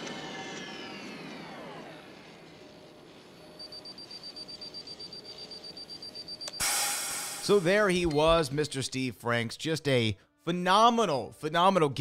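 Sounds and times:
rapid pulsing high beep: 0:03.5 - 0:08.2.

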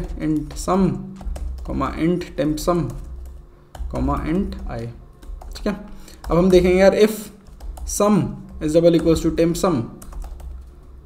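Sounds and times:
keyboard typing clicks: 0:00.0 - 0:01.8, 0:02.5 - 0:11.0.

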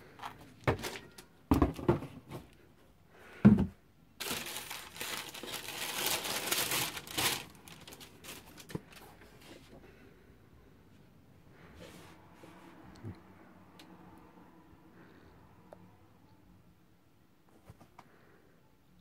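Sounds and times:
tissue paper crinkling: 0:04.2 - 0:09.0.

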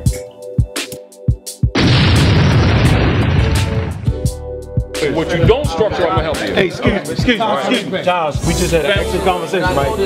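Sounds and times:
hip hop beat: 0:00.0 - 0:01.8, 0:03.6 - 0:10.0
loud explosion rumbling: 0:01.8 - 0:04.4.

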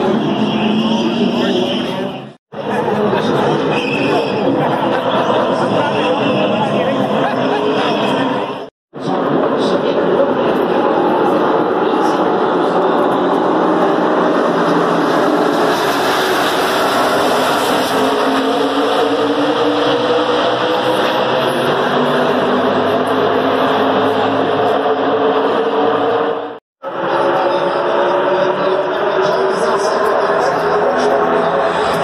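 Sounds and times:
stock car engines racing: 0:00.0 - 0:32.0.

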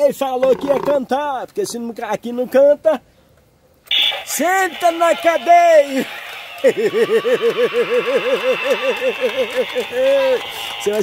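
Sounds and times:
voice warbling: 0:00.4 - 0:01.0.

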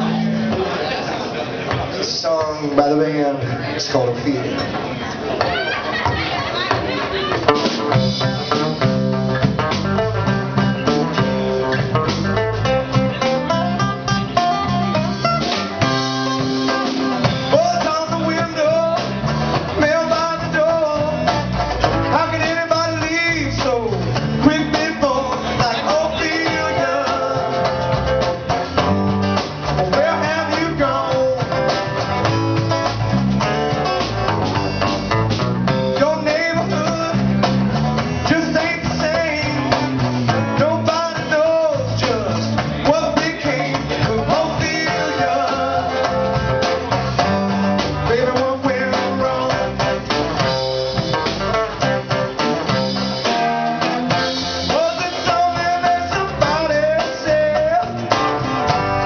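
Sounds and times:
drum kit: 0:00.0 - 0:03.2, 0:04.0 - 0:59.0
electric and acoustic guitars: 0:00.0 - 0:59.0.

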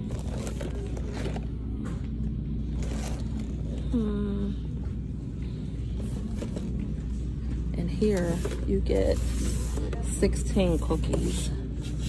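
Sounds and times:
store background rumble: 0:00.0 - 0:12.0.

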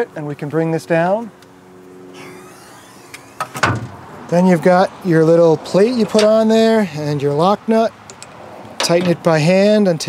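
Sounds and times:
loud metal clunk: 0:03.4 - 0:04.0.

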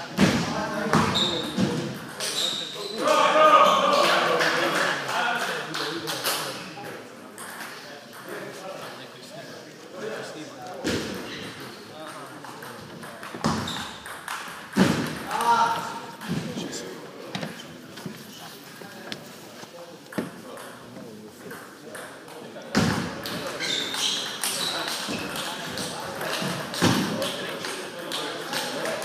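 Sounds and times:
voices in reverberant hall: 0:00.0 - 0:29.0
table tennis ball hit: 0:12.5 - 0:15.6.

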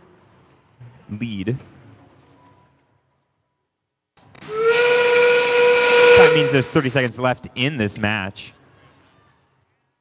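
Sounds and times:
train whistle sound effect: 0:04.4 - 0:06.8.

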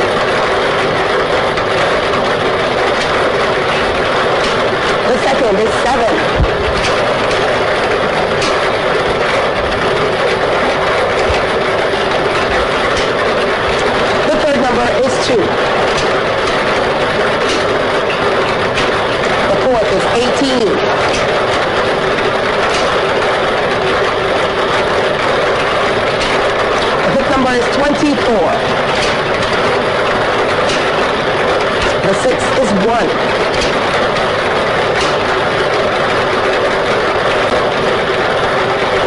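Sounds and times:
ball machine rushing noise: 0:00.0 - 0:39.0
balls clattering in chamber: 0:00.0 - 0:39.0.

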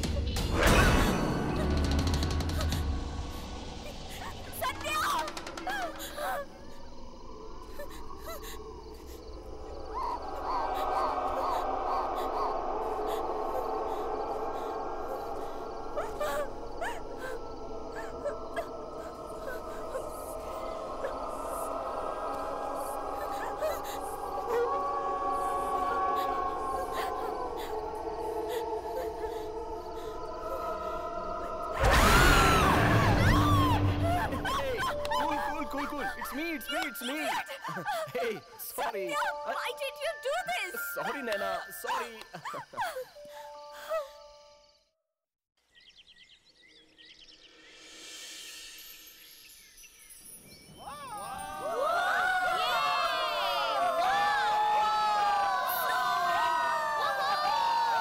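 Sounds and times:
horror film score: 0:00.0 - 0:44.8, 0:49.8 - 0:58.0.

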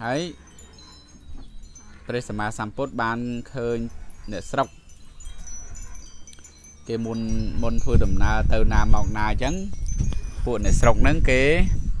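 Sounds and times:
wind chime ringing: 0:00.0 - 0:12.0.

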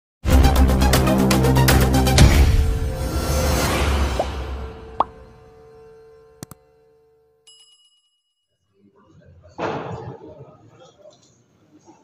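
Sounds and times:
intro music: 0:00.3 - 0:06.8.

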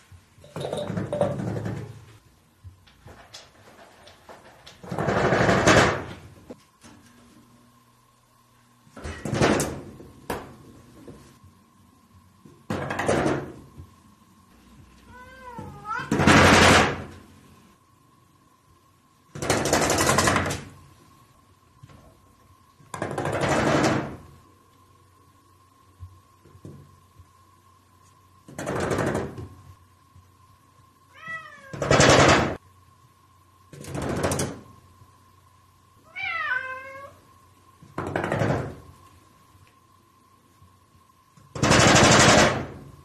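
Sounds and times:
cat meowing: 0:15.0 - 0:16.2, 0:31.1 - 0:31.8, 0:36.1 - 0:37.2.

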